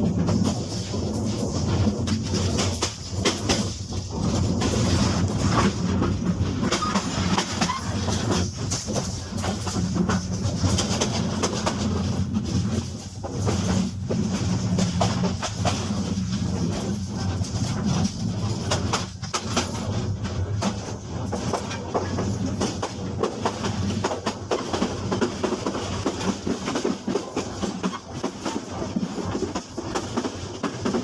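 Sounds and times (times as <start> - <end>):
train running on rails: 0.0 - 31.0
sharp rail clicks: 0.2 - 31.0.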